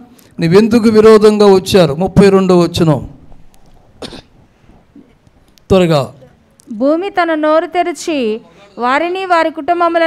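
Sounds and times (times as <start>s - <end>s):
man speaking: 0.4s - 3.2s, 5.7s - 6.4s
man coughing into microphone: 3.9s - 4.6s.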